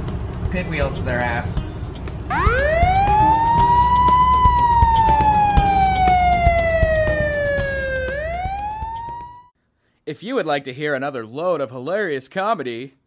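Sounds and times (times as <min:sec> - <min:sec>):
police siren wailing: 0:02.3 - 0:09.5.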